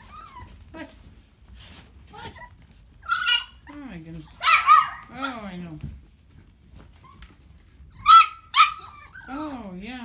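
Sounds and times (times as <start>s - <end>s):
puppy squeak: 0.0s - 0.6s, 2.2s - 3.8s, 6.9s - 9.6s
puppies scuffling: 0.0s - 10.0s.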